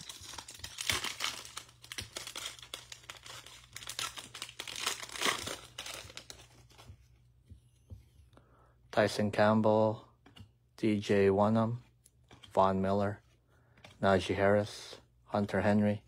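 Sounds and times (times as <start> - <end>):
foil wrapper tearing and crinkling: 0.0 - 6.6.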